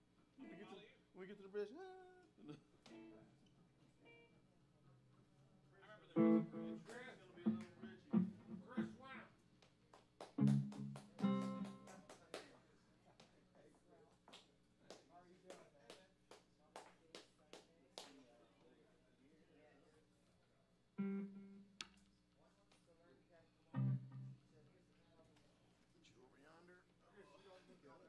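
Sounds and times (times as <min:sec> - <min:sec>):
plucked electric guitar notes: 0:06.2 - 0:09.0, 0:10.4 - 0:11.9, 0:21.0 - 0:21.9, 0:23.8 - 0:24.4
bass notes: 0:07.5 - 0:08.9, 0:10.4 - 0:11.7, 0:23.8 - 0:24.3.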